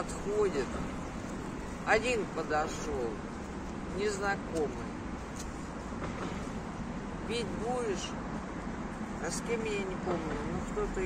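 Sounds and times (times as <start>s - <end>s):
city road traffic hum: 0.0s - 11.0s.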